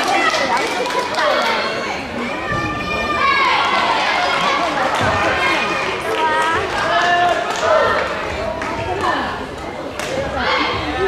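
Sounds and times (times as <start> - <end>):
voices calling out and chatting: 0.0 - 11.0.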